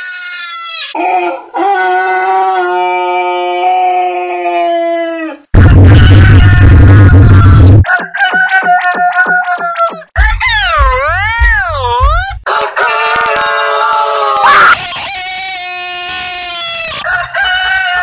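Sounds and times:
deep bass: 5.6s - 7.8s, 10.2s - 12.4s
edited rooster crows: 5.6s - 10.6s.

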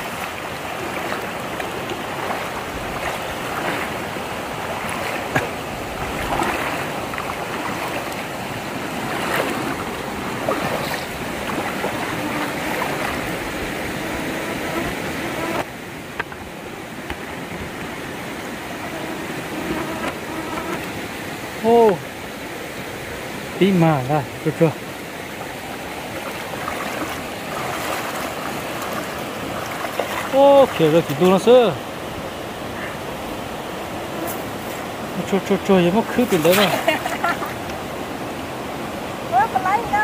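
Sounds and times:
rocky stream running: 0.0s - 40.0s
water swishing around wading legs: 0.0s - 40.0s.

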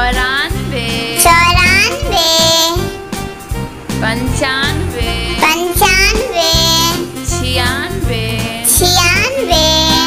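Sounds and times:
child singing: 0.0s - 3.0s, 4.1s - 10.0s
children's music backing track: 0.0s - 10.0s.

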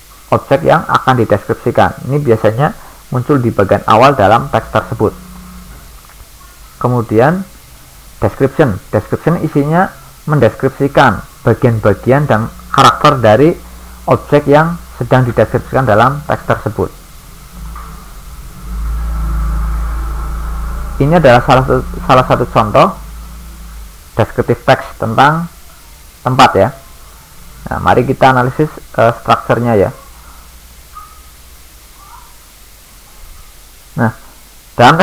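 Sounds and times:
faint thin whine: 0.0s - 35.0s
recording hiss and hum: 0.0s - 35.0s
steady low rumble: 2.0s - 31.9s.

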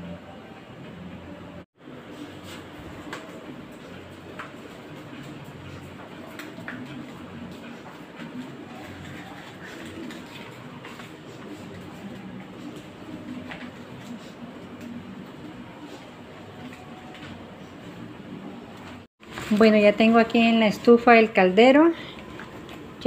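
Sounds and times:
steady background hum: 0.0s - 23.0s.

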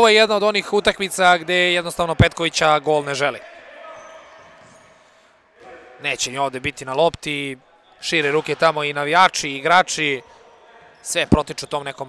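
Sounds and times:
commentary speech: 0.0s - 4.3s.

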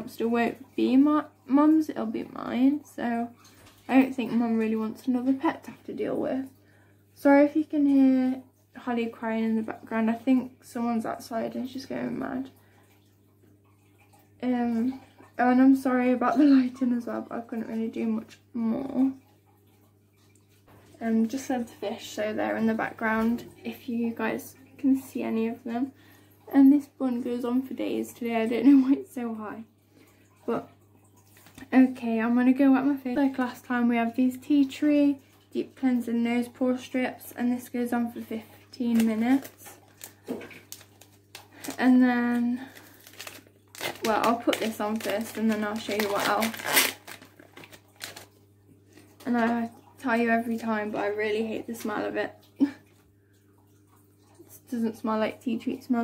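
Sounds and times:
low steady hum: 0.0s - 56.0s.

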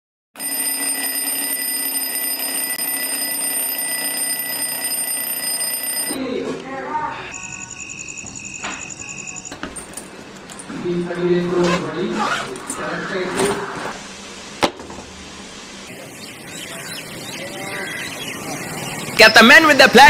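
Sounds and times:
alarm clock ringing: 0.4s - 6.2s, 7.3s - 9.7s, 15.9s - 20.0s
rapid electronic beeping: 7.3s - 9.6s, 15.9s - 20.0s.

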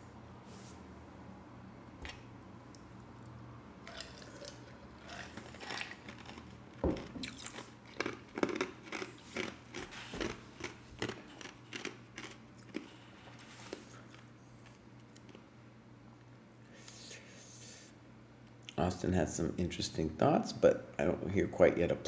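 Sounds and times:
person chewing crunchily: 3.8s - 15.4s.

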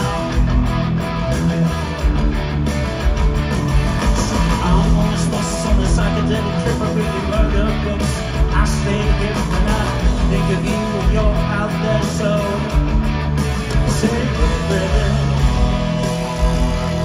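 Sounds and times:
electric guitars: 0.0s - 17.0s
live rock band playing: 0.0s - 17.0s.

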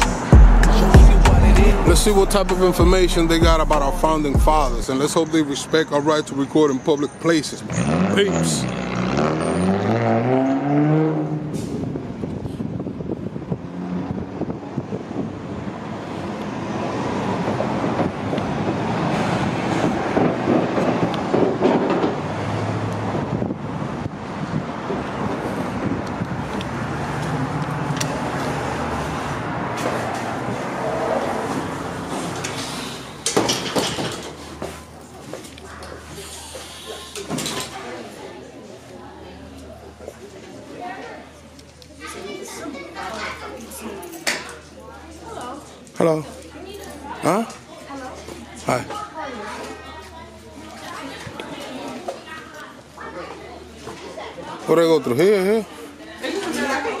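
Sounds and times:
vehicle passing: 0.0s - 5.8s, 7.5s - 12.2s, 13.4s - 33.3s
indistinct background voices: 0.0s - 8.7s
city street traffic: 0.0s - 57.0s.

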